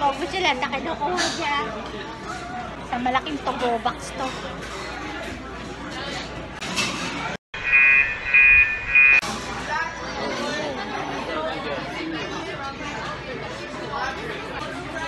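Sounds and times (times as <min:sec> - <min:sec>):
loud electronic beeps: 0:07.6 - 0:09.2.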